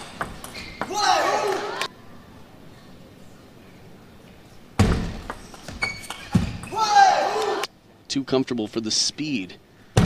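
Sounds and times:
crowd cheering: 0:00.8 - 0:01.9, 0:06.7 - 0:07.7
loud shout: 0:00.8 - 0:01.9, 0:06.7 - 0:07.7.

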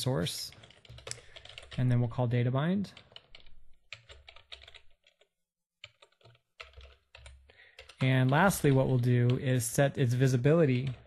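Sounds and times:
computer keyboard typing: 0:00.5 - 0:02.0, 0:03.0 - 0:09.7, 0:10.7 - 0:11.0.

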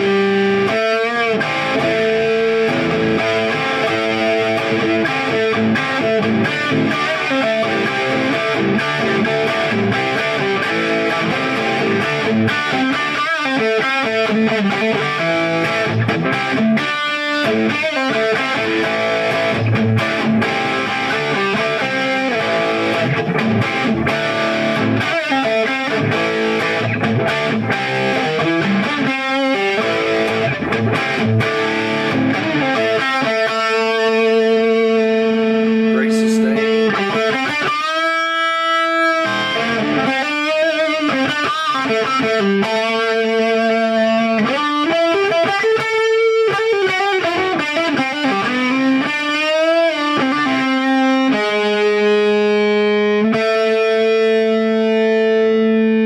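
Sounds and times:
electric guitar through amplifier: 0:00.0 - 0:56.0.

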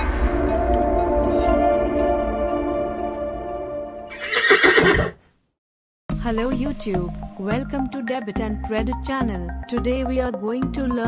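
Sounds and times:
horse neighing: 0:04.1 - 0:05.2.

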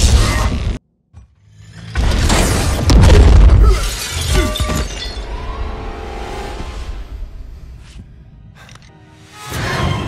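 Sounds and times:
glass shattering: 0:03.5 - 0:05.3
dramatic music score: 0:04.4 - 0:10.0.

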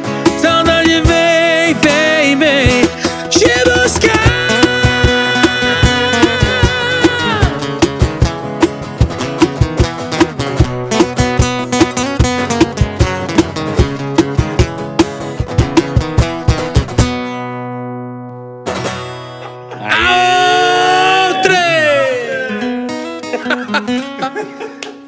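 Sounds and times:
acoustic guitars strumming: 0:00.0 - 0:25.0
cajon beating: 0:00.2 - 0:17.3.

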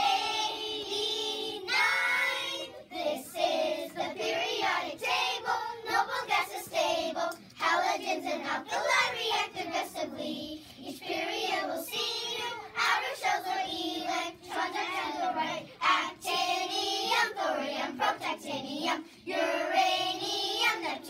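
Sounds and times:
children singing in unison: 0:00.0 - 0:21.0.

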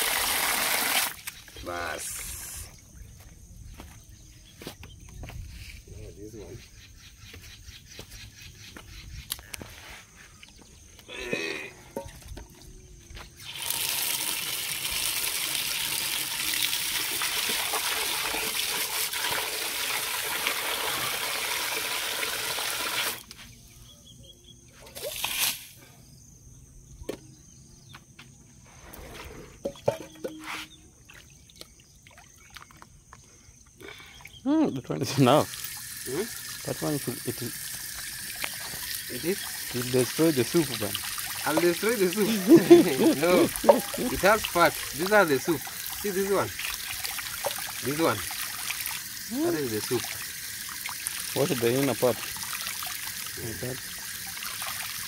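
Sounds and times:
tap water gushing into basin: 0:00.0 - 0:01.3, 0:13.4 - 0:23.3, 0:35.2 - 0:55.0
tap filling metal pot: 0:29.6 - 0:30.4
small water splashes: 0:31.0 - 0:33.1, 0:35.4 - 0:55.0.

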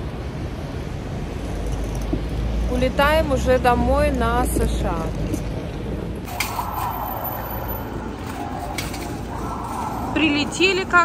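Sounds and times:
airport terminal rushing noise: 0:05.9 - 0:11.0.

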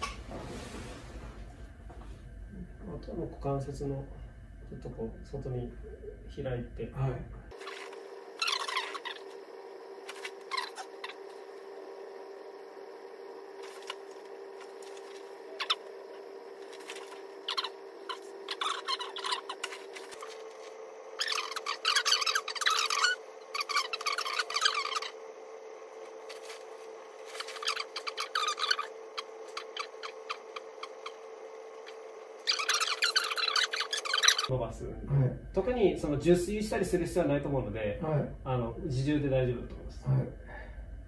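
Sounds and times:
steady hum: 0:00.0 - 0:41.0
squeaky rustling of bed and sheets: 0:16.6 - 0:25.2, 0:26.0 - 0:31.2, 0:31.8 - 0:34.5.

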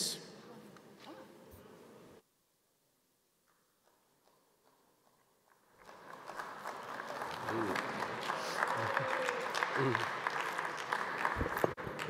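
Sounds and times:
audience applauding: 0:05.6 - 0:12.0.

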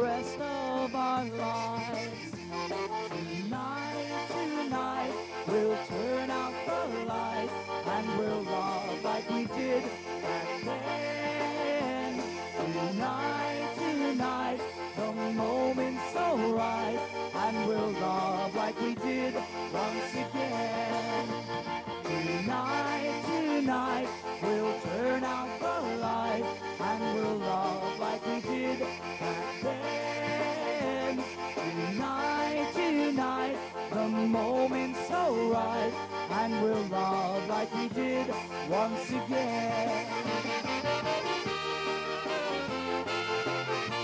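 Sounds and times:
accordion melody: 0:00.0 - 0:44.0
electric bass guitar: 0:00.0 - 0:44.0.

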